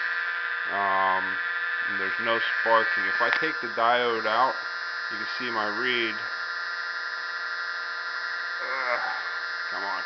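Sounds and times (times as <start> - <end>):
pulse motor buzzing hum: 0.0 - 10.0.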